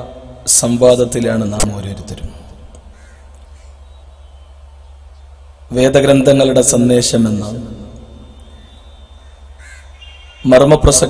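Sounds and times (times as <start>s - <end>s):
steady low hum: 0.0s - 11.0s
short faint bird call: 8.0s - 10.5s.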